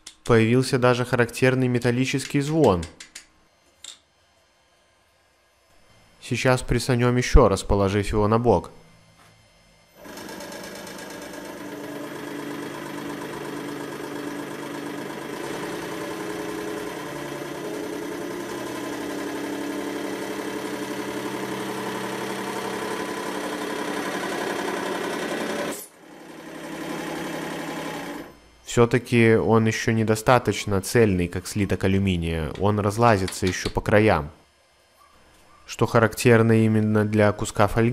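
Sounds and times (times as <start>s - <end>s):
hydraulic press buzzing: 8.9s - 28.7s.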